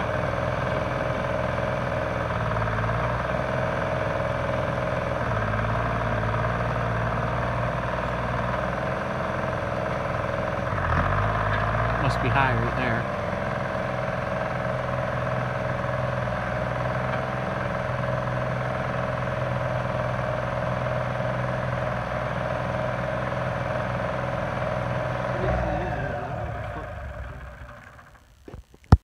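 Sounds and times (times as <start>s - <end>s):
engine idling: 0.0s - 28.5s.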